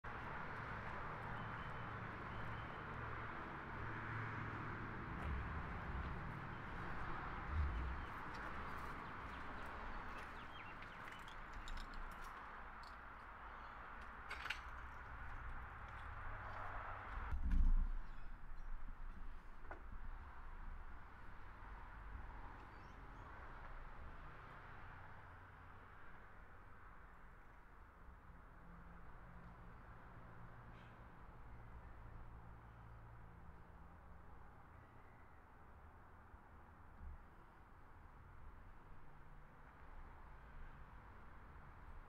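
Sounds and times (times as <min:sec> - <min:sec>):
road traffic hum: 0:00.0 - 0:42.0.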